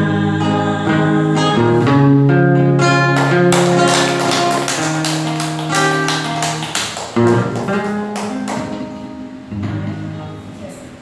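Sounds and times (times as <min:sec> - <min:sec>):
acoustic guitar playing: 0:00.0 - 0:10.9.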